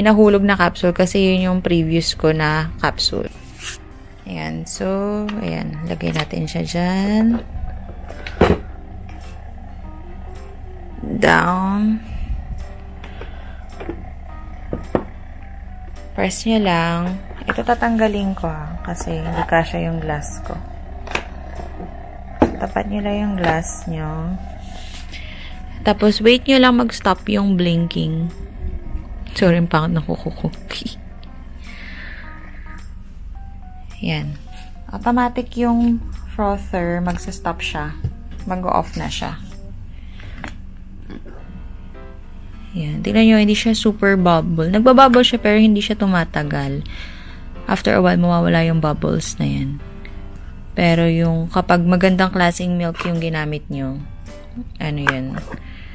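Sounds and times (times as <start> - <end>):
background music: 0.0 - 55.9
milk frother humming: 5.8 - 32.7.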